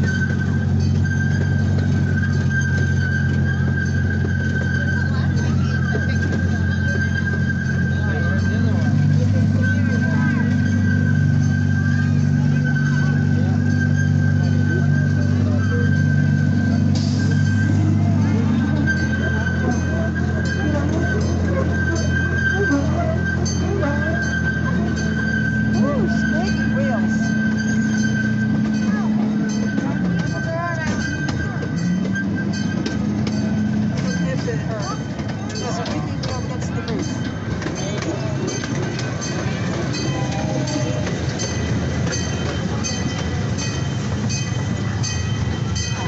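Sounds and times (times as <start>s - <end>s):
distant voices: 0.0s - 46.0s
train engine drone: 0.0s - 46.0s.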